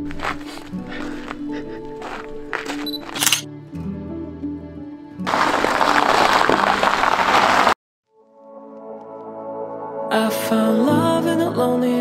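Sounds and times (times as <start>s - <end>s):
soft background music: 0.0s - 5.5s, 8.1s - 12.0s.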